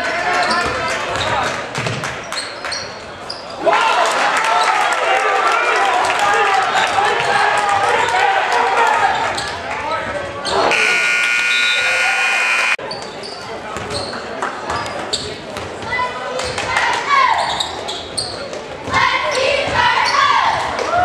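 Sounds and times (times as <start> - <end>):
spectators' voices: 3.5 - 21.0
gym buzzer tone: 10.7 - 12.8.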